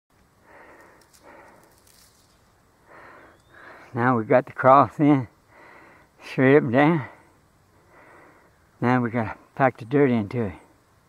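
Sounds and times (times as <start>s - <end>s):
faint ticks: 0.2s - 2.4s
person breathing: 0.4s - 4.0s, 5.4s - 6.2s, 7.0s - 8.7s.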